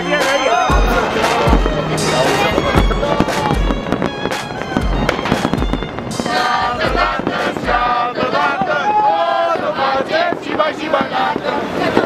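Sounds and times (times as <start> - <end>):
music with bass beat: 0.0 - 8.6
fireworks bursting: 0.0 - 12.0.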